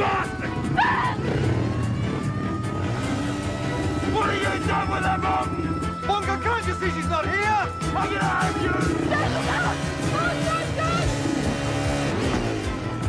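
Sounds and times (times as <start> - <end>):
voices shouting: 0.0 - 11.3
motorbike engine running: 0.0 - 13.0
music: 0.0 - 13.0.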